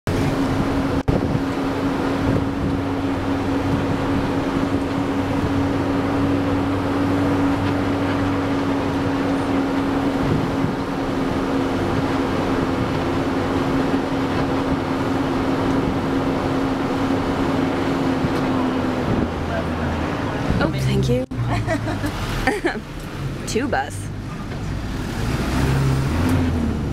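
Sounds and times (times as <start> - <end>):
bus engine and road noise: 0.0 - 26.9.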